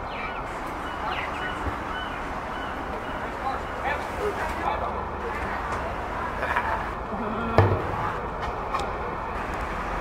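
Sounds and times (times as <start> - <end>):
faint voices: 0.0 - 8.4
outdoor background noise: 0.0 - 10.0.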